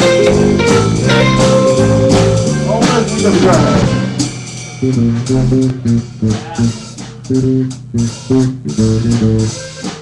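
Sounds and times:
electric guitar riff: 0:00.0 - 0:09.6
electric bass: 0:00.0 - 0:09.7.

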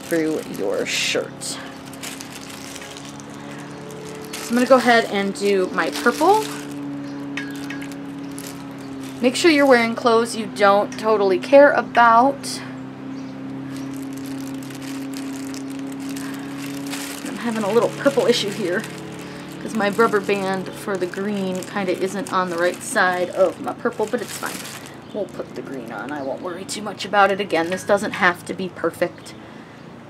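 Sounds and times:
wet crackling and spattering: 0:00.0 - 0:01.0, 0:01.8 - 0:09.9, 0:13.6 - 0:26.1
hum of sustained tones: 0:00.0 - 0:23.8.

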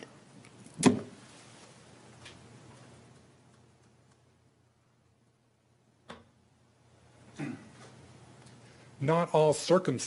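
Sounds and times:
man coughing: 0:07.3 - 0:07.8.

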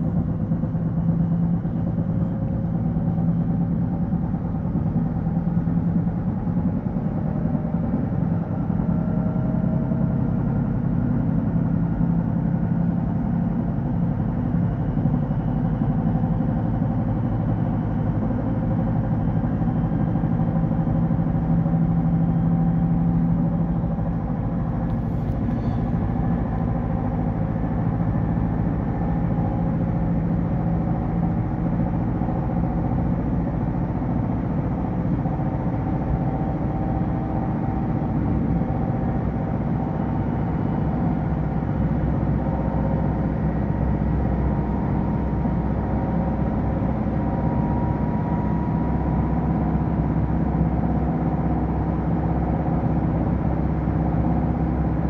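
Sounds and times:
train running hum and rumble: 0:00.0 - 0:55.0.

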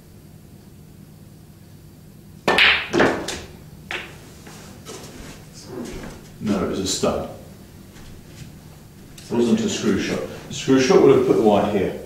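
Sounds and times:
cue striking snooker ball: 0:02.5 - 0:04.2
snooker balls colliding: 0:02.5 - 0:04.2.

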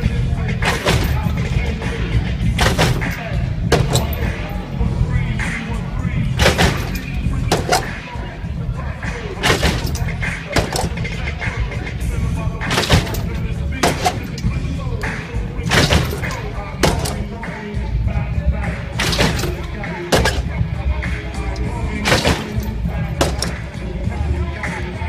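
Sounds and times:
crowd voices: 0:00.0 - 0:25.0
loud music with heavy bass: 0:00.0 - 0:25.0
car body slamming down: 0:00.6 - 0:01.4, 0:02.6 - 0:04.3, 0:06.4 - 0:08.0, 0:09.4 - 0:11.1, 0:12.7 - 0:14.5, 0:15.6 - 0:17.3, 0:19.0 - 0:20.6, 0:22.0 - 0:23.6.

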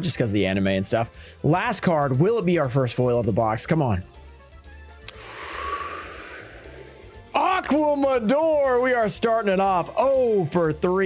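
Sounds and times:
faint background music: 0:00.0 - 0:11.0
breathy mouth breath: 0:05.0 - 0:07.3.

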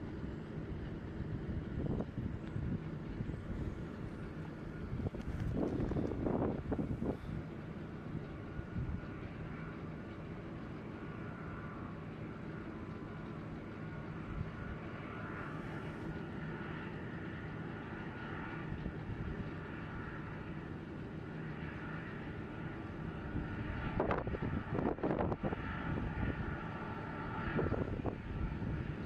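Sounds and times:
distant jet engines rumbling: 0:00.0 - 0:29.0
faint turbine whine: 0:00.0 - 0:29.0.

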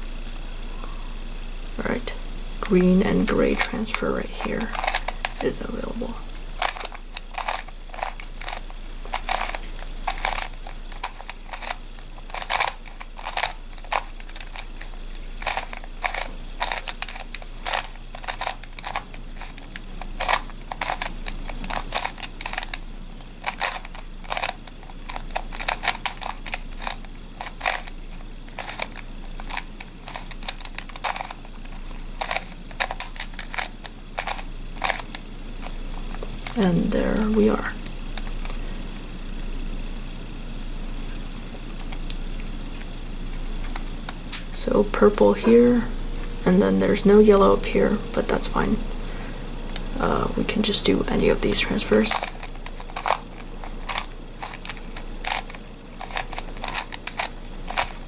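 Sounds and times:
plastic puzzle clicking: 0:04.6 - 0:05.5, 0:06.6 - 0:36.6, 0:52.1 - 0:58.0.

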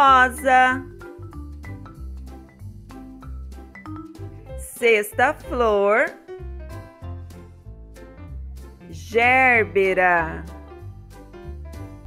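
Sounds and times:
mallet percussion notes: 0:00.0 - 0:06.0
low bass notes: 0:00.0 - 0:12.0.

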